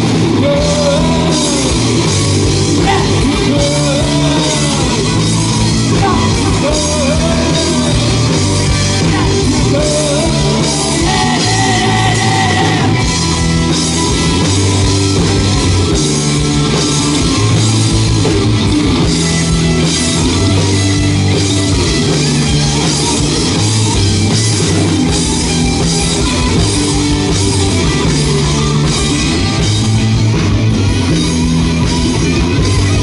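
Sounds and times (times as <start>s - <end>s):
live rock band playing: 0.0s - 33.0s
repeating bass line: 0.0s - 33.0s.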